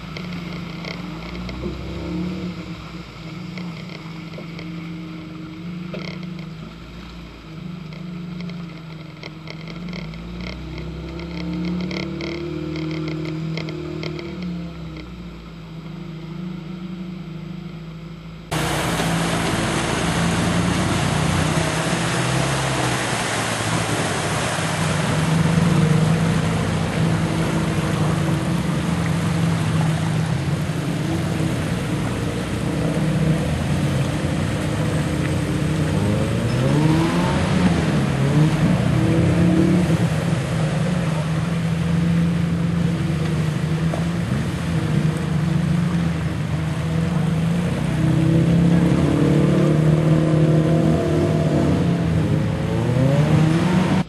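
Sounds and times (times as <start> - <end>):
engine revving: 0.0 - 54.0
engine running under load: 0.0 - 54.0
steady rushing noise: 18.0 - 50.8.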